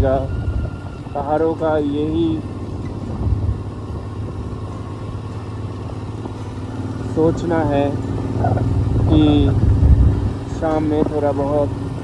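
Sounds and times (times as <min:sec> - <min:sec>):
motorcycle engine rumble: 0:00.0 - 0:12.0.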